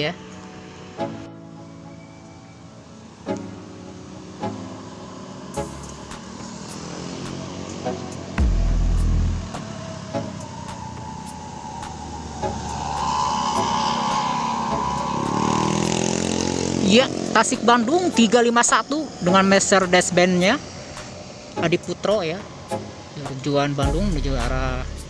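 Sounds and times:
cars passing: 0:00.0 - 0:25.0
coach engine whining: 0:00.3 - 0:25.0
motorcycle passing: 0:03.1 - 0:25.0.

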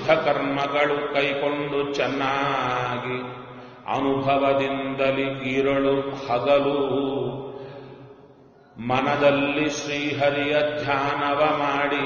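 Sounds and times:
man chanting: 0:00.0 - 0:08.1, 0:08.8 - 0:12.0.

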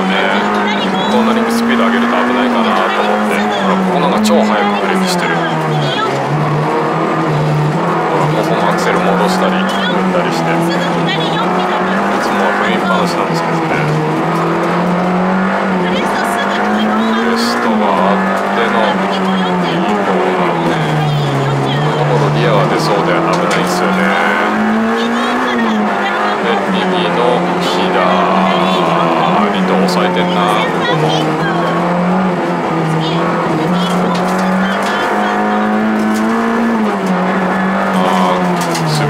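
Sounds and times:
car engine revving in cabin: 0:00.0 - 0:39.0.

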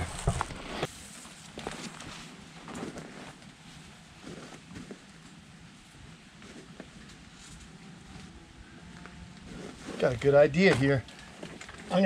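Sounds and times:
branches rustling: 0:00.0 - 0:12.0.

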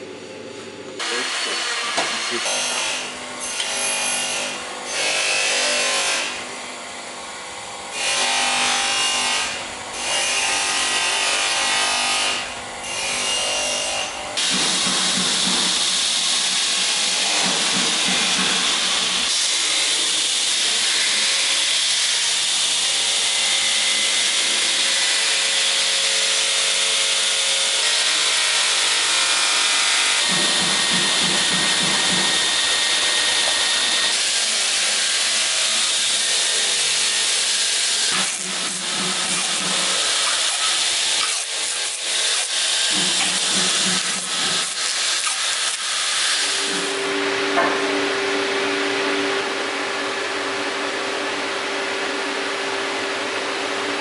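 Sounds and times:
grinding wheel rasping: 0:27.4 - 0:47.0.

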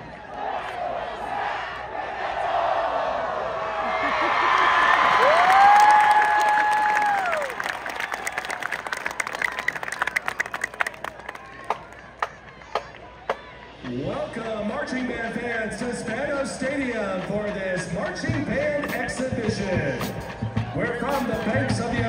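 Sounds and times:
stadium crowd cheering and applauding: 0:00.0 - 0:15.6.

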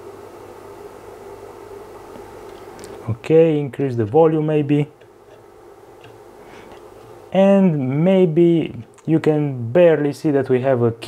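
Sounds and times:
low electrical hum: 0:00.0 - 0:11.0
steady faint hiss: 0:00.0 - 0:11.0.

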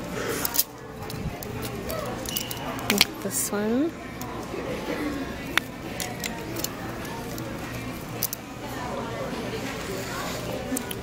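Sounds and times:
plastic hangers clicking on metal rack: 0:00.4 - 0:03.4, 0:05.5 - 0:07.5, 0:08.2 - 0:08.4.

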